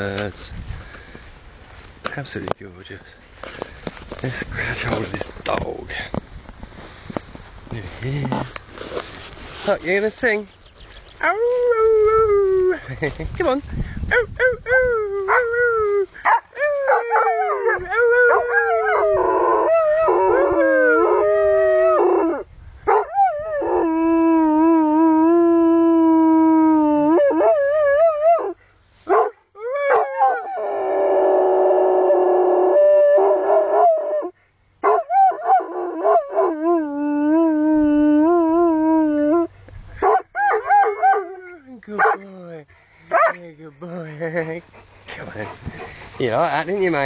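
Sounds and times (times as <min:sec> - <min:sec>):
dog howling: 0:16.6 - 0:22.4.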